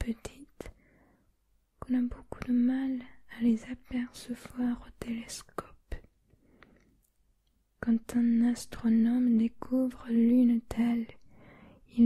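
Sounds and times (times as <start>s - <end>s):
woman reading aloud softly: 0.0s - 0.7s, 1.8s - 6.1s, 7.8s - 11.2s.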